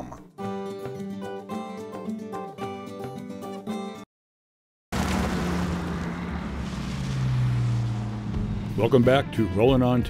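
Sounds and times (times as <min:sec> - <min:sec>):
road noise rushing: 0:04.9 - 0:09.6
vehicle engine running: 0:05.0 - 0:09.8.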